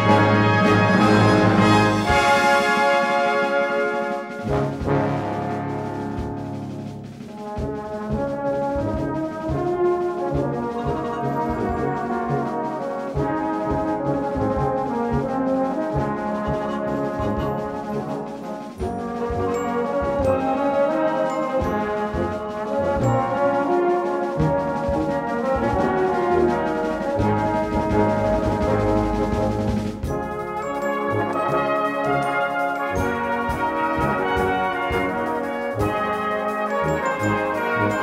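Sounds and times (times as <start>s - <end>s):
brass band playing chords: 0.0s - 38.0s.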